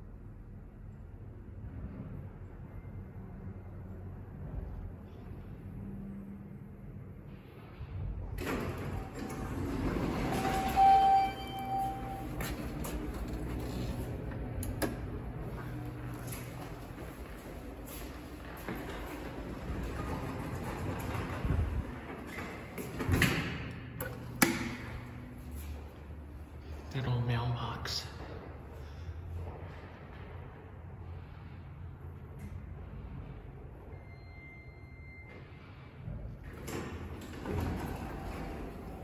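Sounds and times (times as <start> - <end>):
elevator doors sliding open: 7.8 - 26.4, 29.7 - 39.0
low ringing tone: 8.9 - 13.9, 33.8 - 35.9
steady electronic tone: 10.2 - 12.8.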